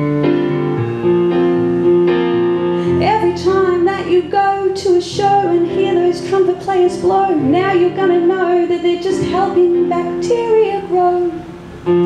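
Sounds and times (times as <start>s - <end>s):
keyboard playing held chords: 0.0s - 12.0s
woman singing: 2.9s - 11.5s.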